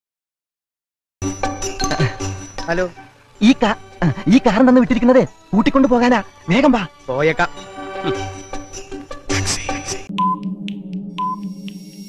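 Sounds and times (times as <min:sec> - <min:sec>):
countdown timer pings: 0:10.1 - 0:12.0.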